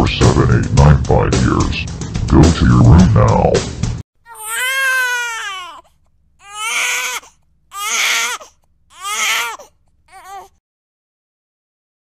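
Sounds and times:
cartoon child crying: 4.3s - 5.8s, 6.5s - 7.2s, 7.8s - 8.4s, 9.0s - 10.5s.

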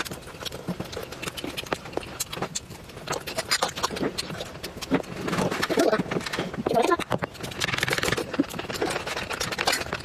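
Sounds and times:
wet chewing and slurping: 0.0s - 10.0s.

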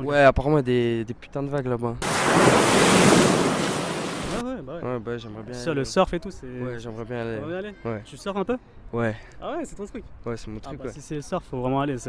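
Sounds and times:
ocean wave breaking: 2.0s - 4.4s.

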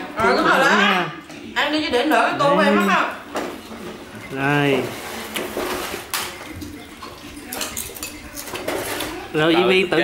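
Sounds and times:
tableware clinking: 2.0s - 9.7s.

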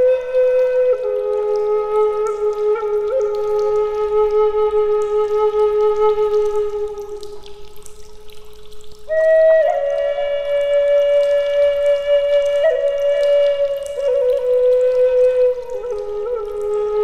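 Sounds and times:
solo flute playing slow notes: 0.0s - 7.5s, 9.1s - 17.0s.

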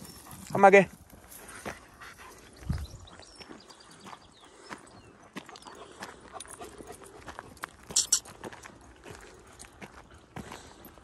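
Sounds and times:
footsteps on dirt path: 0.0s - 11.0s.

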